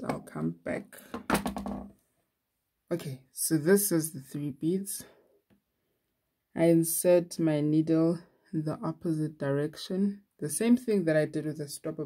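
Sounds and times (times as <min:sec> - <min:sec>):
woman speaking: 0:00.0 - 0:01.1, 0:02.9 - 0:05.2, 0:06.6 - 0:12.0.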